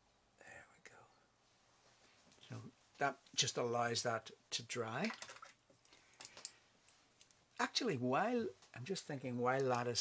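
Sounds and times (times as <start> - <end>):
man speaking: 2.4 - 5.2, 7.6 - 10.0.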